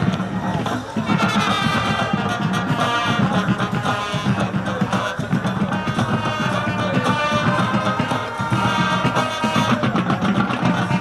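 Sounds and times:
marching band brass and drums: 0.0 - 11.0.

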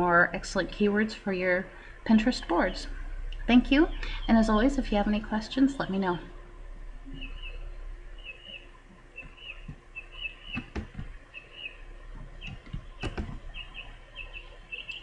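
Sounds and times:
birds chirping: 1.4 - 6.4, 7.0 - 15.0
sharp clicks: 12.4 - 13.4.

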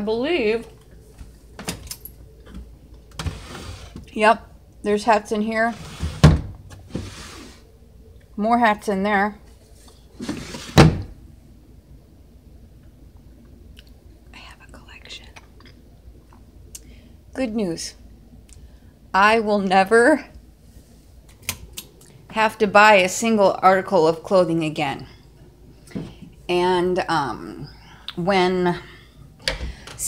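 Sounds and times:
soft whispering: 14.2 - 15.8.

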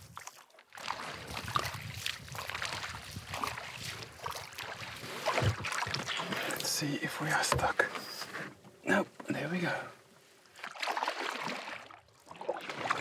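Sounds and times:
wading steps in water: 0.0 - 13.0
water splashing around a canoe: 0.0 - 13.0.

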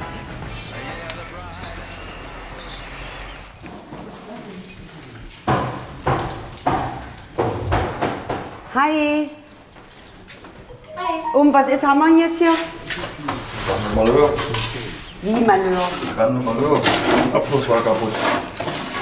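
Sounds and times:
background music: 0.0 - 3.2, 10.7 - 12.9
knocks and clatter echoing: 5.2 - 8.7.

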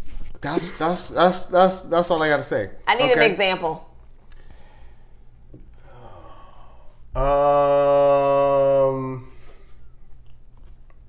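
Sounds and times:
low steady room hum: 0.0 - 11.0
person sighing: 5.8 - 9.5.

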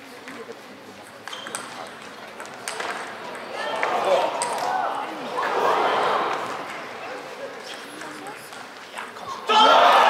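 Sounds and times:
table tennis rally clicks: 1.0 - 4.7.

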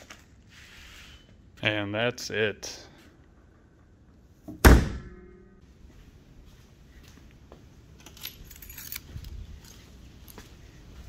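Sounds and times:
metallic jingling and clicking: 8.0 - 9.9.

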